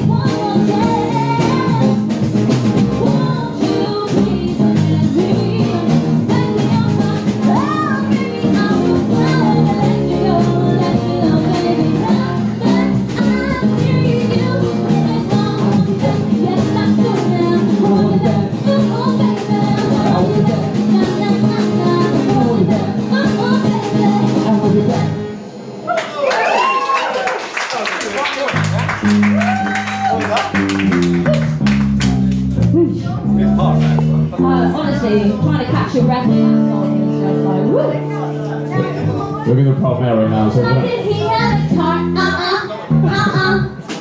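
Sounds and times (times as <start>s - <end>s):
live rock band playing: 0.0s - 27.0s, 28.4s - 44.0s.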